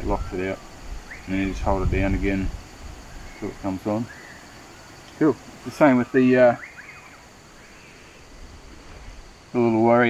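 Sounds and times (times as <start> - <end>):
faint insect hum: 0.0 - 10.0.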